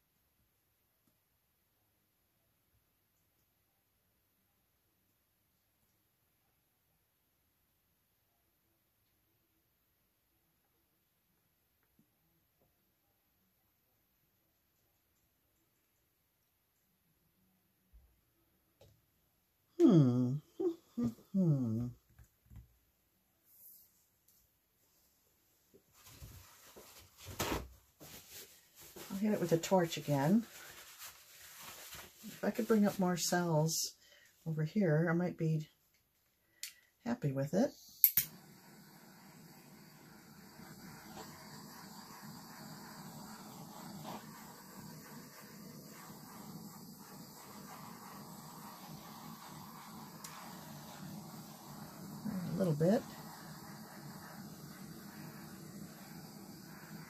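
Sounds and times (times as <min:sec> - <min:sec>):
torch flame hissing: 0:27.4 - 0:33.4, 0:37.2 - 0:57.0
torch click: 0:38.0 - 0:57.0.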